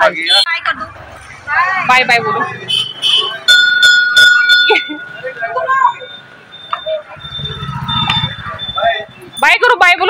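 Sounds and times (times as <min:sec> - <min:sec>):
faint high-pitched beep: 0:04.4 - 0:09.6
motorcycle engine rumble: 0:04.9 - 0:09.8.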